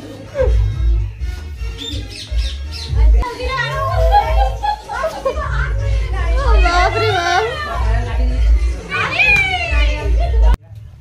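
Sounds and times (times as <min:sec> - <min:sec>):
people calling out and laughing: 0:02.6 - 0:10.6.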